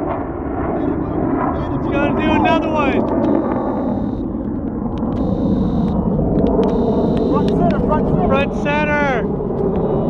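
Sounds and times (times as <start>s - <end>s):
jet engines rumbling: 0.0s - 10.0s
faint high whine: 0.9s - 4.3s, 5.1s - 10.0s.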